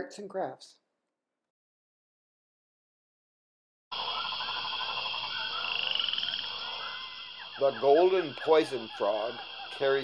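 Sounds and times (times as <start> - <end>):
frogs trilling in chorus: 3.9 - 10.0.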